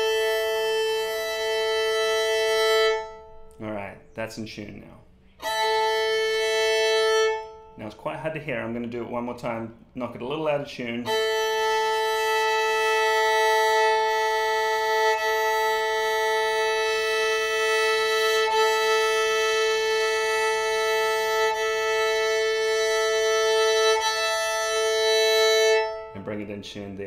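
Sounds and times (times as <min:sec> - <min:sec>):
violin bowing a sustained fifth: 0:00.0 - 0:04.0, 0:04.7 - 0:08.1, 0:10.7 - 0:26.9.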